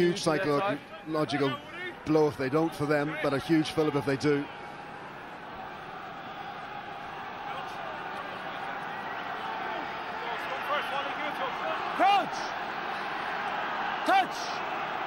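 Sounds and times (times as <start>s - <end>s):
stadium crowd noise: 0.0s - 15.0s
loud shout: 6.2s - 15.0s.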